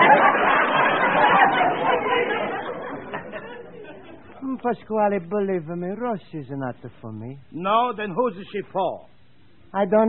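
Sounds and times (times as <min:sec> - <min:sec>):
studio audience laughing: 0:00.0 - 0:04.6.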